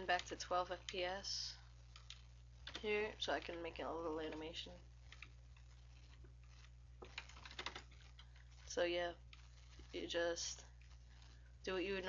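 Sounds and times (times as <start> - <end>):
low steady hum: 0.0 - 12.0
computer keyboard clicking: 7.1 - 8.3.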